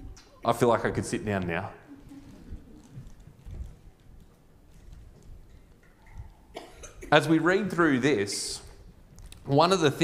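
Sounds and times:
person coughing: 0:06.6 - 0:07.2.

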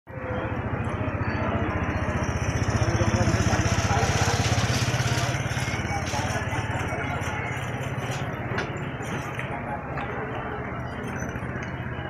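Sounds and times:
motorcycle engine idling: 0:00.1 - 0:08.8.

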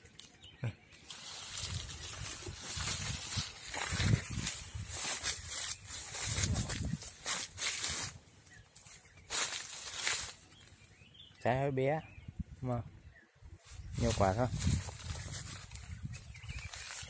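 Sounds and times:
leaves rustling: 0:00.0 - 0:11.2, 0:13.6 - 0:17.0
footsteps crunching on dry leaves: 0:01.0 - 0:10.9, 0:13.6 - 0:17.0.

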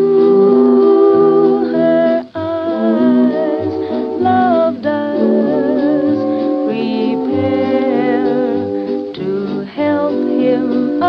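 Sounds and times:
old jazz recording: 0:00.0 - 0:11.0.

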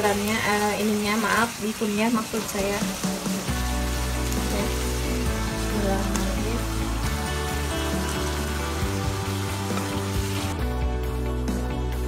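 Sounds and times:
food sizzling in a frying pan: 0:00.0 - 0:11.8
background music: 0:00.0 - 0:12.0.

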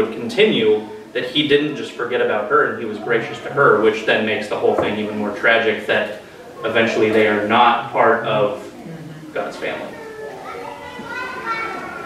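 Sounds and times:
adults talking: 0:00.0 - 0:12.0
children's voices: 0:00.0 - 0:12.0.

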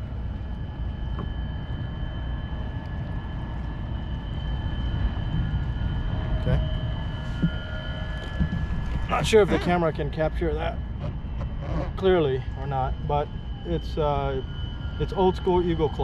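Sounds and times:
distant machinery rumble: 0:00.0 - 0:16.0
high-pitched whine: 0:00.0 - 0:16.0.

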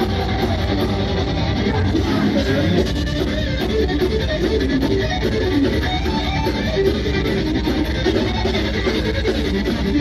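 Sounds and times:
bass guitar: 0:00.0 - 0:10.0
drums: 0:00.0 - 0:10.0
fast electric guitar line: 0:00.0 - 0:10.0.

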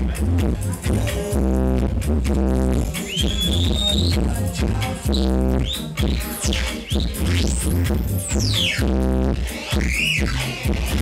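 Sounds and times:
reggae through sound system: 0:00.0 - 0:11.0
high whistling tone: 0:03.0 - 0:04.2, 0:05.1 - 0:08.9, 0:09.8 - 0:10.3.

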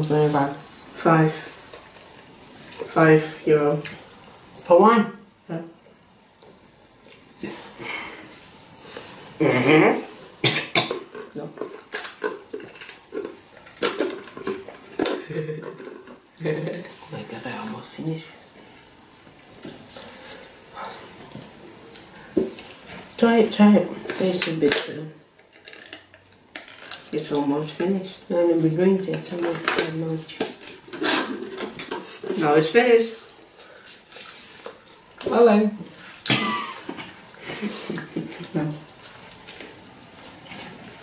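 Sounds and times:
wet chewing and mouth sounds: 0:10.8 - 0:15.2.

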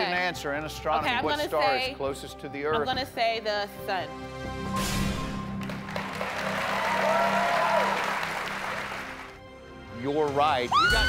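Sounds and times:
audience applause: 0:05.6 - 0:09.4.

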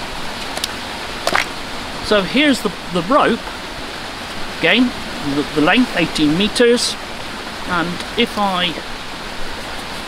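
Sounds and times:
stream water rushing: 0:00.0 - 0:10.0.

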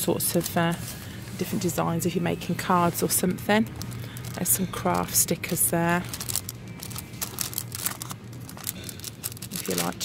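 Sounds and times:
plastic packets crinkling: 0:03.1 - 0:10.0.

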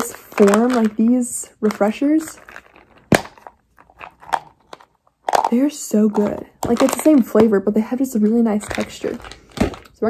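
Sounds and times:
container handling clicks and taps: 0:00.0 - 0:07.6.

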